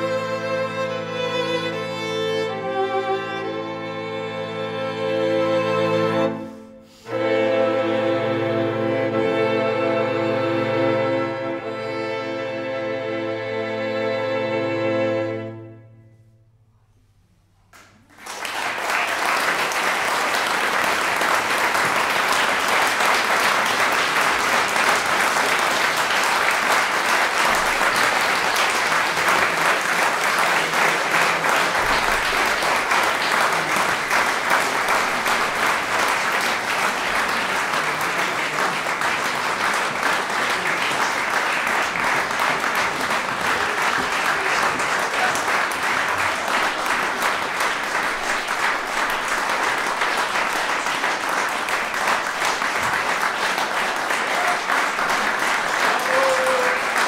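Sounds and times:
audience applauding: 17.8s - 57.0s.

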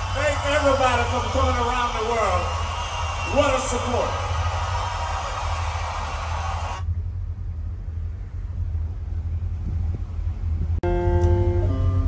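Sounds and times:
concert crowd noise: 0.0s - 7.0s
low rumble: 6.8s - 11.1s.

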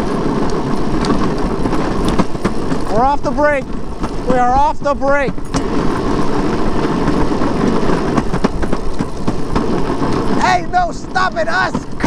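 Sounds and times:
wheels rolling over asphalt: 0.0s - 12.0s.

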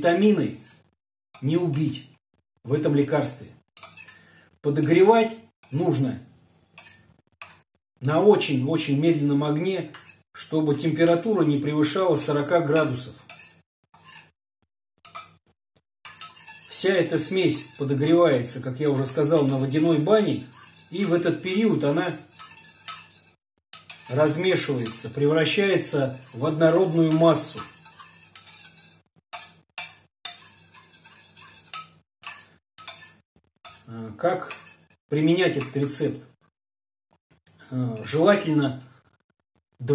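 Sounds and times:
spoon scraping metal cup: 0.6s - 1.0s, 3.8s - 4.3s, 6.7s - 7.6s, 9.9s - 10.2s, 12.8s - 14.3s, 15.0s - 15.4s, 16.1s - 35.0s.

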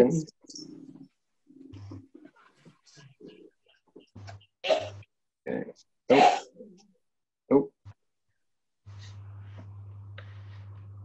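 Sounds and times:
low steady hum: 8.9s - 11.0s.

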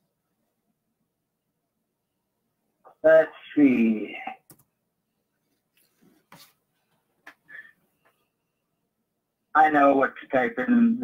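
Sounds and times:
computer keys clicking: 4.5s - 4.7s.

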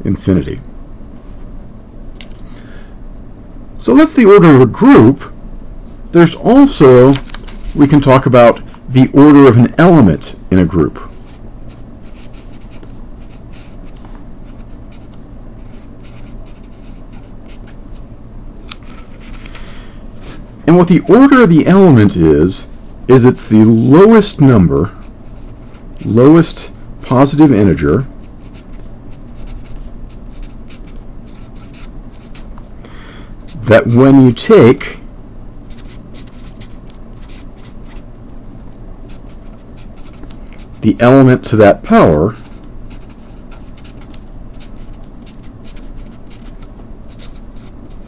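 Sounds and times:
steady low hum: 0.0s - 48.0s
marker scratching on paper: 11.1s - 17.8s, 25.0s - 26.2s, 28.2s - 32.6s, 35.7s - 38.1s, 39.1s - 40.9s, 42.3s - 48.0s.

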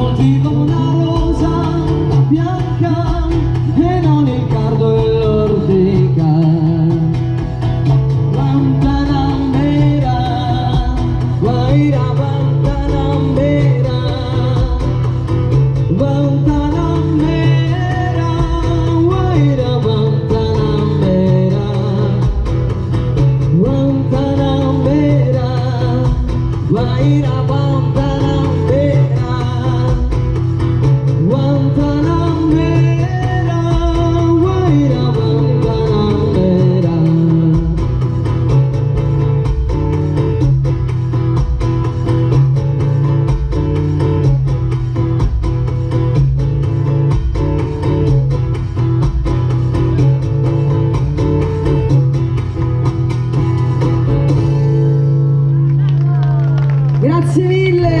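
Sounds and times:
acoustic guitar strumming: 0.0s - 56.0s
woman singing: 57.0s - 58.0s.

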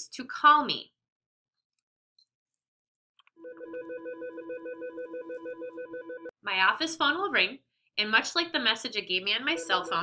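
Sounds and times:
desk phone ringing electronic warble: 3.4s - 6.3s.

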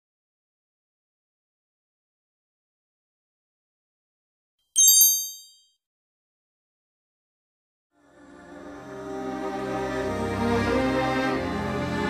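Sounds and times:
high-pitched metallic chime: 4.8s - 5.6s.

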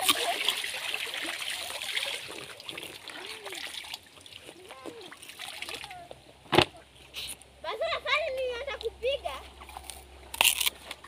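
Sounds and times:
water splashing and dripping: 0.0s - 6.2s.

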